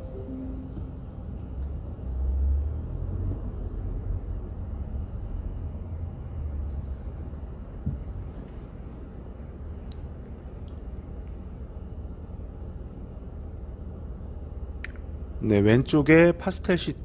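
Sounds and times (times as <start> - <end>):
car engine and tyres rumbling: 0.8 - 14.8.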